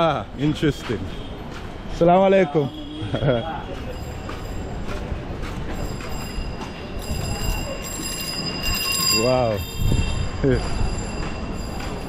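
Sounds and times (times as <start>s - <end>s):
passers-by: 0.0s - 12.0s
traffic din: 0.0s - 12.0s.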